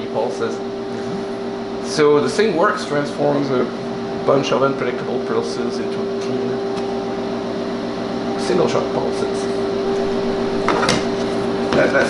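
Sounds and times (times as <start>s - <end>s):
electrical hum from test equipment: 0.0s - 12.0s.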